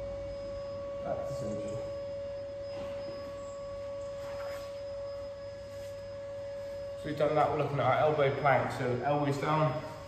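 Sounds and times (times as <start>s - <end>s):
high-pitched electrical whine: 0.0s - 10.0s
rustles on rubber mat: 4.1s - 6.9s.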